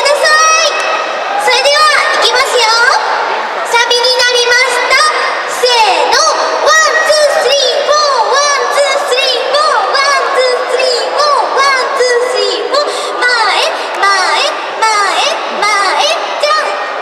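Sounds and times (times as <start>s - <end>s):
crowd noise: 0.0s - 17.0s.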